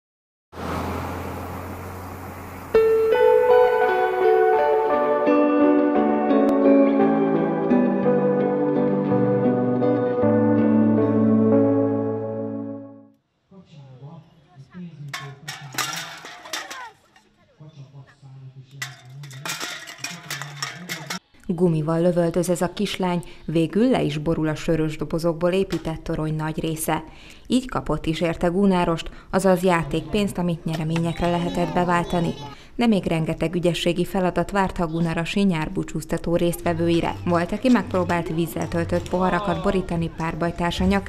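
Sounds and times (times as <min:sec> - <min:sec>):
distant road traffic: 0:00.5 - 0:04.3
aluminium cans clattering: 0:15.2 - 0:17.3, 0:18.8 - 0:21.2
children's voices: 0:30.7 - 0:32.6, 0:34.6 - 0:35.3, 0:36.6 - 0:41.0.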